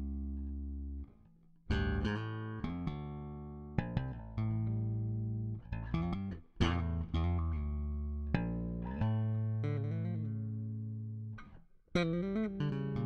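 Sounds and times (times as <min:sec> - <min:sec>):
electric bass guitar playing: 0:00.0 - 0:13.0.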